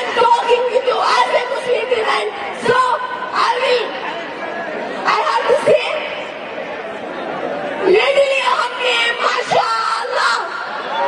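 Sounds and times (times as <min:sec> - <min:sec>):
crowd chatter: 0:00.0 - 0:11.0
woman talking into a microphone: 0:05.1 - 0:06.2.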